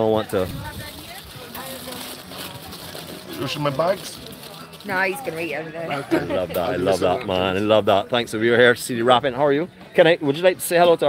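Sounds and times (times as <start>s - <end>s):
faint voices: 0.0s - 10.8s
aluminium foil crinkling: 0.3s - 5.6s.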